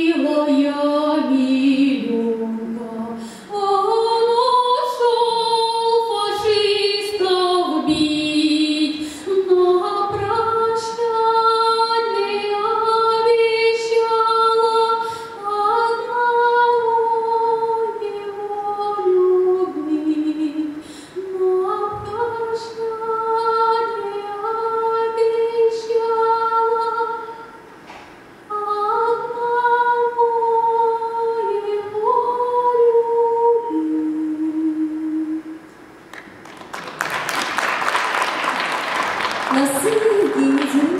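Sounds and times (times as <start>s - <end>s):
woman singing unaccompanied: 0.0s - 27.5s, 28.5s - 35.7s, 39.5s - 40.9s
woman breathing in: 3.2s - 3.5s
audience applause: 36.1s - 40.9s.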